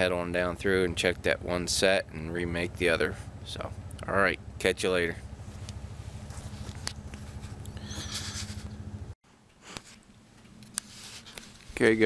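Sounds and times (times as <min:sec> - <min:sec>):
atv engine idling: 0:00.0 - 0:09.2.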